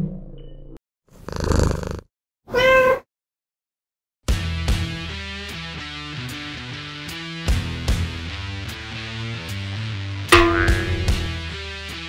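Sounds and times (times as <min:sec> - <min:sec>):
cat purring: 0:01.2 - 0:02.0
cat meow: 0:02.5 - 0:03.1.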